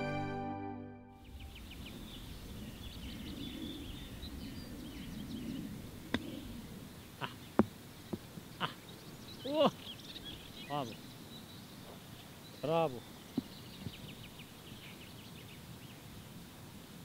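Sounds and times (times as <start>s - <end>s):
birds chirping: 1.2s - 17.0s
golf ball bouncing: 6.1s - 6.4s.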